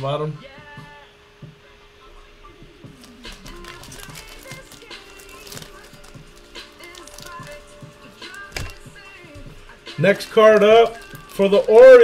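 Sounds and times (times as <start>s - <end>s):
quiet background music: 0.0s - 12.0s
trading cards clicking and rustling: 2.9s - 12.0s.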